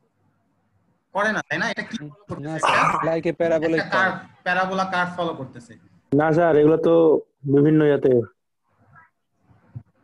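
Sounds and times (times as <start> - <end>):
man speaking: 1.4 - 8.4.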